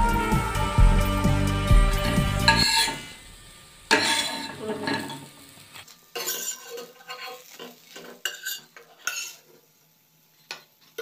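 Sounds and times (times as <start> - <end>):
spatula scraping frying pan: 2.0 - 3.1, 3.9 - 5.3, 6.2 - 9.6
spatula clinking on metal plate: 8.2 - 9.4.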